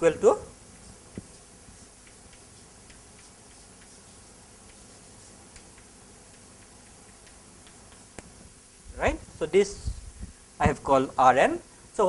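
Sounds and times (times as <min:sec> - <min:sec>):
chalk tapping on blackboard: 0:00.7 - 0:08.5.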